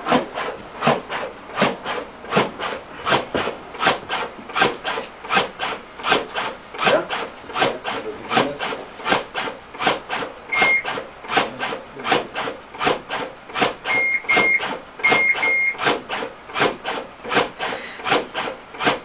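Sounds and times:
mechanical cpr device motor: 0.1s - 19.0s.

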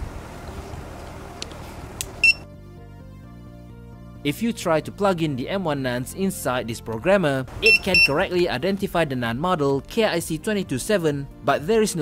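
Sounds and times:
soft background music: 0.0s - 12.0s
short high beeps: 2.2s - 2.5s, 7.6s - 8.3s.

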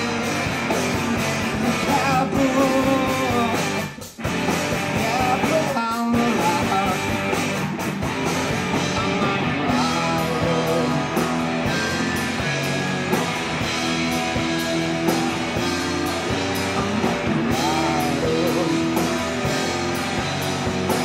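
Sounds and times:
rock band playing: 0.0s - 21.0s
man singing: 1.6s - 4.0s, 4.9s - 7.4s, 8.8s - 11.5s, 16.6s - 19.5s.

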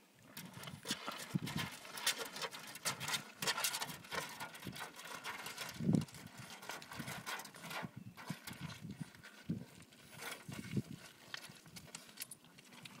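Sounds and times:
pebbles crunching and clattering: 0.3s - 13.0s.

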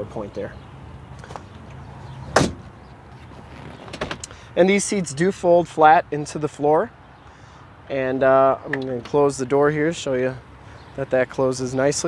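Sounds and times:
sharp knock: 2.4s - 2.7s.

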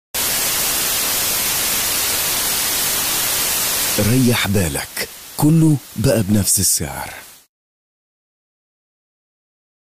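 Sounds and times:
television static hiss: 0.2s - 7.5s.

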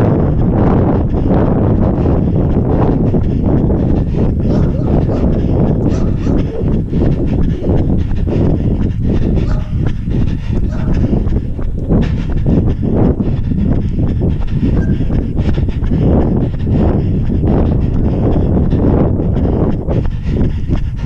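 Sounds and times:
hard breathing: 0.0s - 21.0s
running footfalls on pavement: 0.0s - 21.0s
wind rumbling on microphone: 0.0s - 21.0s.

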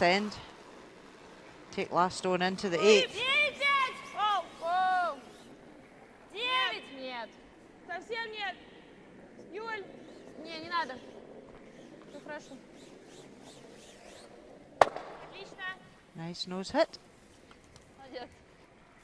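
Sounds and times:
players shouting calls: 2.6s - 5.4s.

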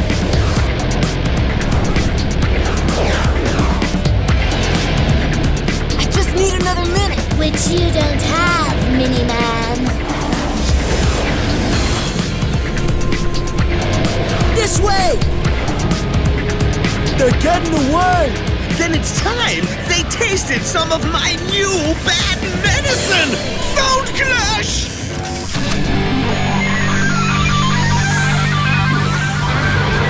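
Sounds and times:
futuristic vehicle sound effects: 0.0s - 30.0s
loud action music: 0.0s - 30.0s.

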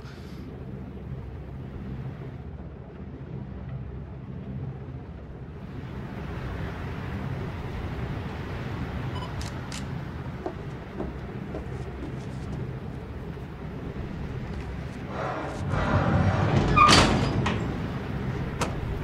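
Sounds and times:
freight train rumbling: 0.0s - 2.5s, 4.9s - 19.0s
sliding door grinding scrape: 14.9s - 18.6s.

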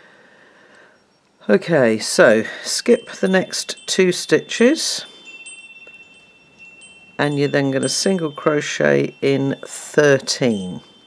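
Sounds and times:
faint high-pitched whining tones: 0.0s - 11.0s.

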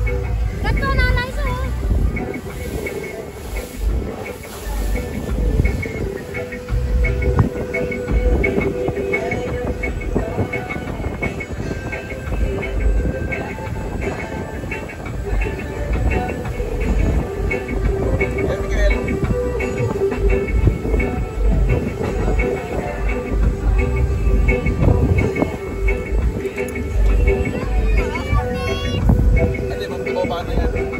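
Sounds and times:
background music: 0.0s - 30.9s
speedboat engine rumble: 0.0s - 30.9s
wind buffeting microphone: 0.0s - 30.9s.

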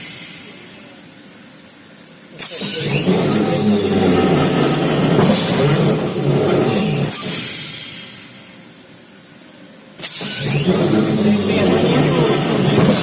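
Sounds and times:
screw press mechanical hum: 0.0s - 13.0s.

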